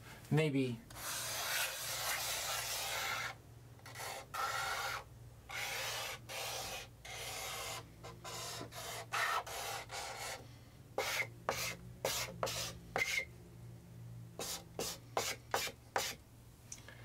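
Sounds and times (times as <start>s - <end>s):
chalk scraping on blackboard: 0.9s - 10.4s, 11.0s - 13.3s, 14.4s - 16.2s.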